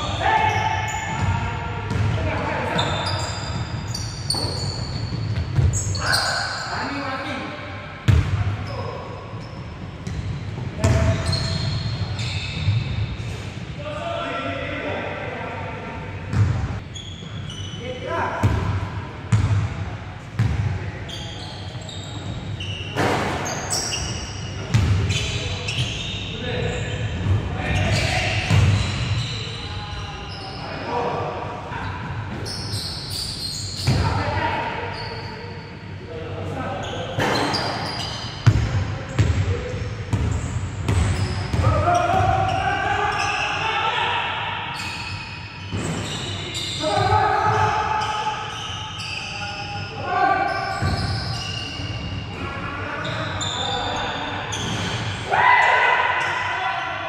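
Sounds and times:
basketball bouncing on gym floor: 4.3 - 5.8, 8.0 - 8.5, 38.4 - 39.5.

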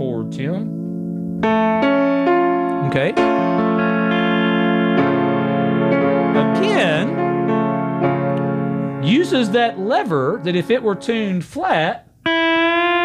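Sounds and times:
keyboard sustaining chord: 0.0 - 11.5, 12.2 - 13.0
pedal steel guitar notes: 0.0 - 13.0.

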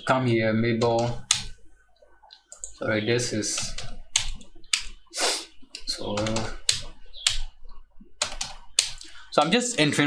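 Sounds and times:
computer keyboard keystrokes: 0.8 - 1.5, 2.3 - 2.8, 3.5 - 5.0, 5.7 - 7.5, 8.2 - 9.1.

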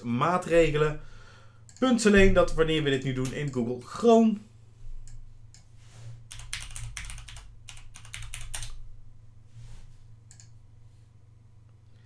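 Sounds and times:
low steady hum: 0.0 - 12.0
keyboard typing: 6.3 - 8.8.

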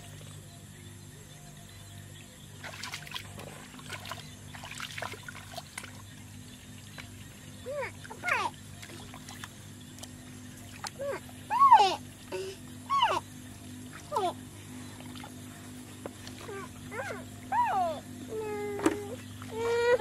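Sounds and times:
animal whining calls: 11.0 - 12.2, 12.8 - 13.4, 16.4 - 20.0.

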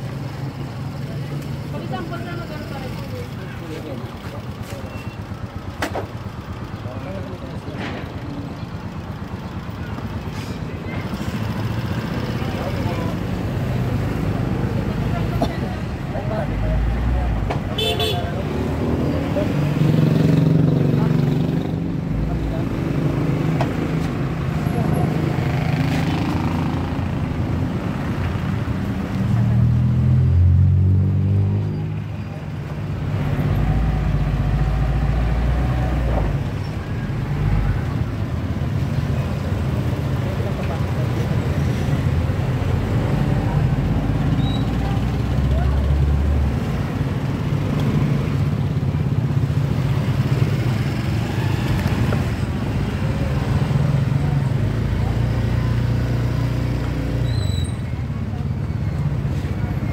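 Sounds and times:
motorcycle engines passing: 0.0 - 59.9
horn toot: 17.8 - 18.3.

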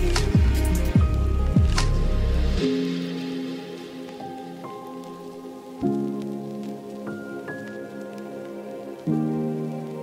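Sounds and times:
ambient electronic music: 0.0 - 10.0
rain-like patter: 0.0 - 10.0.

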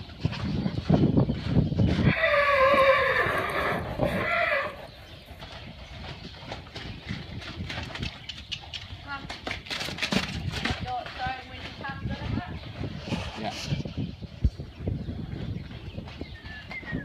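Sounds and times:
hoofbeats on sand: 0.0 - 17.0
horse whinnying: 2.0 - 4.9.

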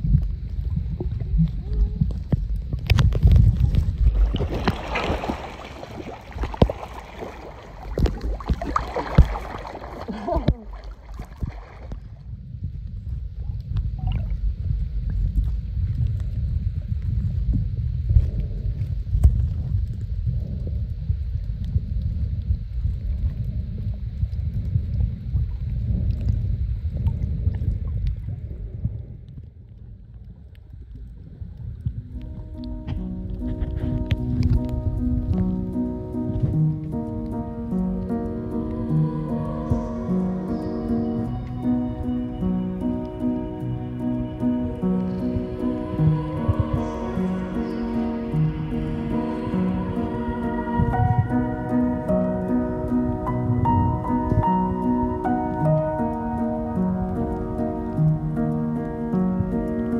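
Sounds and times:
crackles and knocks: 0.0 - 59.9
muffled underwater rumble: 0.0 - 59.9
water sloshing and bubbling: 0.0 - 59.9
music: 32.1 - 59.9.

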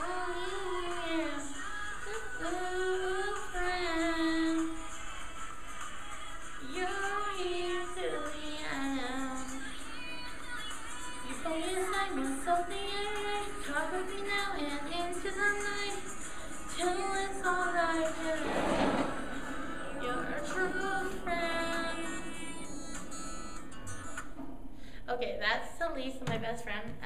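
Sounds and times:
woman singing pop song: 0.0 - 23.7
backing music: 0.0 - 25.0
woman's voice: 25.1 - 27.0.

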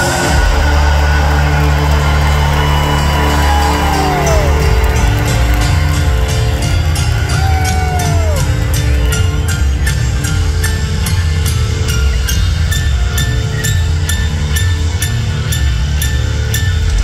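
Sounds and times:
rock band playing live: 0.0 - 17.0.

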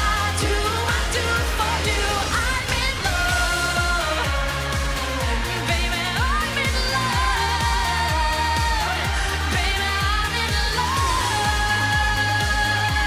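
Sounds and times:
live pop song: 0.0 - 13.0.

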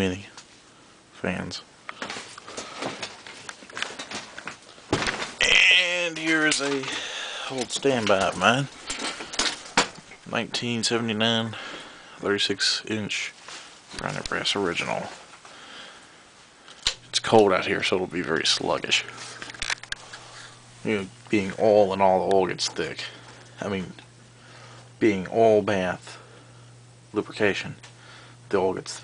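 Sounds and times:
faint room hiss: 0.0 - 29.0.

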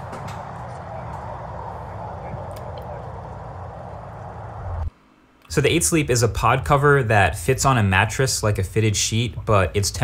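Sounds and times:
low rumble: 0.0 - 4.9
roadside background noise: 0.0 - 5.4.

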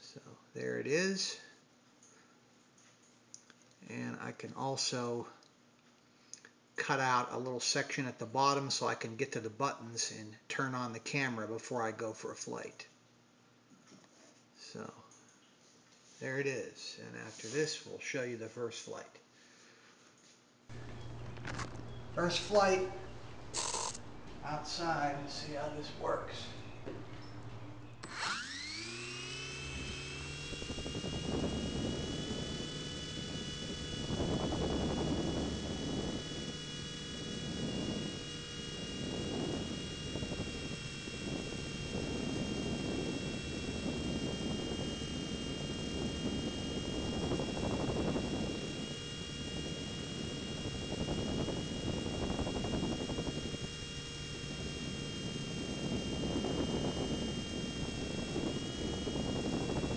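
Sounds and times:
electric motor whine: 20.7 - 59.9
rotor wash on microphone: 20.7 - 59.9.

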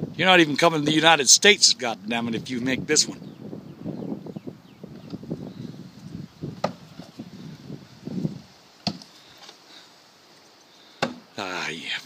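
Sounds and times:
knives striking wooden board: 11.0 - 11.2.

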